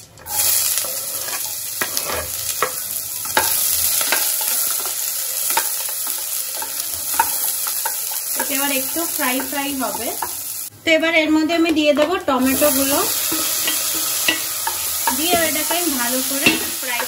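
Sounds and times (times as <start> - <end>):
onions sizzling in hot oil: 0.0 - 10.7, 11.7 - 17.0
wooden spatula scraping pot: 0.8 - 10.4.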